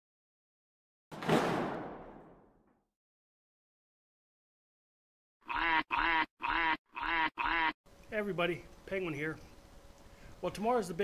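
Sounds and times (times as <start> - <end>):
nasal quack-like animal call: 5.5 - 7.8.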